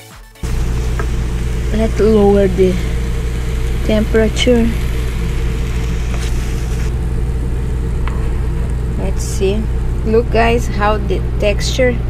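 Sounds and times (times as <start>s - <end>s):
low mechanical hum: 0.4s - 12.0s.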